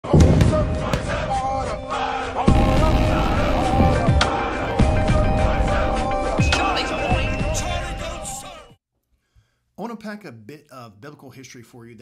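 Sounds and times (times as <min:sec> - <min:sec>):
sharp glitch clicks: 0:02.5 - 0:04.2
heavy low hit: 0:02.5 - 0:06.5.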